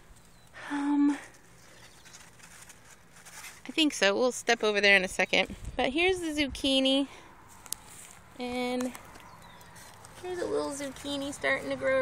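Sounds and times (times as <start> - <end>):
light rustle: 1.2 - 4.1, 7.4 - 11.7.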